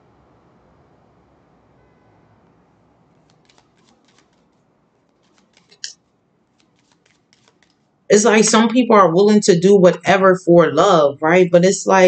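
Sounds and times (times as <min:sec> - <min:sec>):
cards being shuffled: 0:03.1 - 0:07.9.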